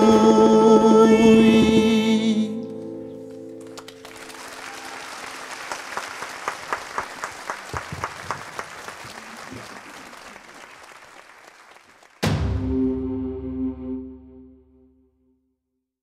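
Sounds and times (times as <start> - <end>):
audience applauding: 3.6 - 12.3
rhythmic clapping in unison: 3.6 - 12.4.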